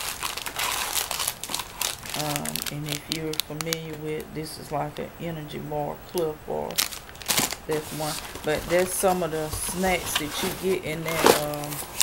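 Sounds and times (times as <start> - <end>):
plastic wrappers crinkling: 0.0 - 5.1, 6.1 - 12.0.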